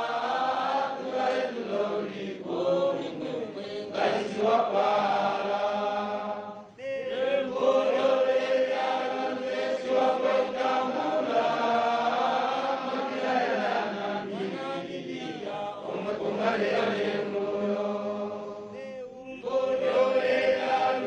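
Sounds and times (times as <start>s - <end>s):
group of voices chanting: 0.0s - 18.6s.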